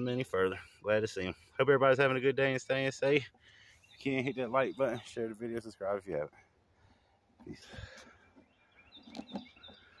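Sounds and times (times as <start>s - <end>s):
faint bird chirps: 3.4s - 5.5s, 7.0s - 10.0s.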